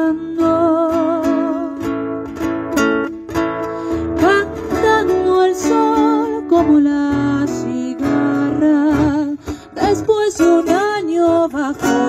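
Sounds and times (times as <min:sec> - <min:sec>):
woman singing: 0:00.0 - 0:02.2, 0:04.0 - 0:12.0
strummed acoustic guitar: 0:00.0 - 0:12.0.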